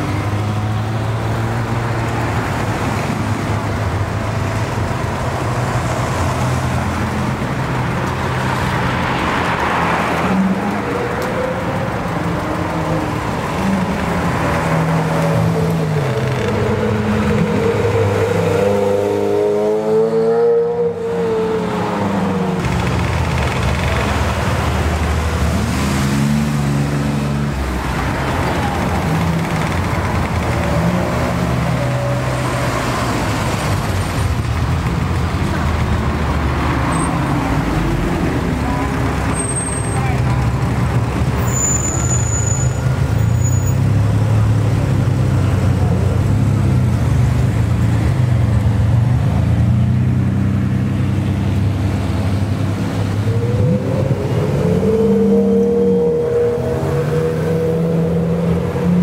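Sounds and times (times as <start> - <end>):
car engines revving: 0.0 - 59.0
people talking: 38.5 - 40.7.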